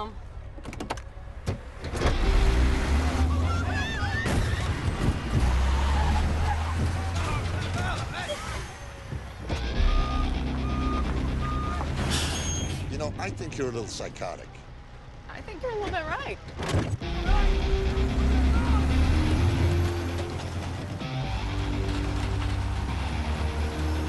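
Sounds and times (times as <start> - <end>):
heavy truck engine accelerating: 1.6 - 14.3, 17.0 - 24.0
crunching metal: 18.1 - 24.0.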